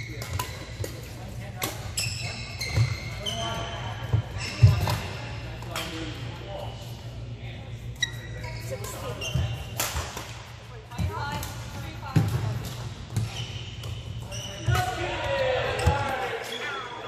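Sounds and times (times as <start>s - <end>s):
low hum of hall: 0.0s - 17.0s
players' voices: 0.0s - 17.0s
sneakers squeaking on court: 1.8s - 5.4s, 7.9s - 10.2s, 10.9s - 14.9s.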